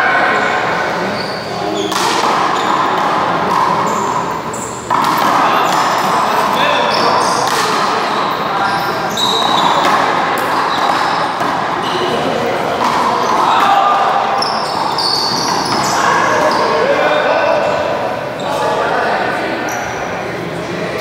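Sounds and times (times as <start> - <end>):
echoing voices: 0.0 - 21.0.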